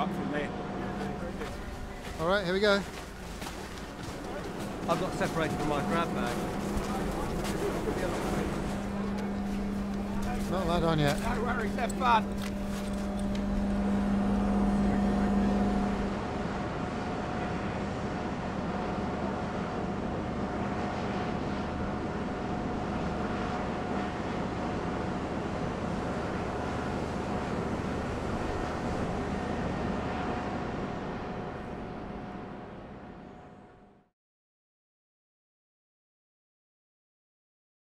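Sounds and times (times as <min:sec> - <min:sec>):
constant whine: 0:00.0 - 0:34.0
deck machinery drone: 0:00.0 - 0:34.1
low hum: 0:00.0 - 0:34.1.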